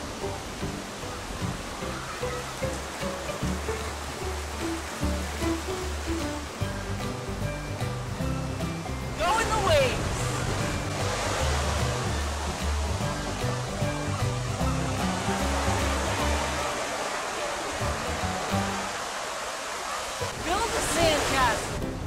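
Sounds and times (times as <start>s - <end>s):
background music bass line: 0.0s - 16.9s, 17.8s - 19.0s
ocean surf breaking: 8.6s - 22.0s.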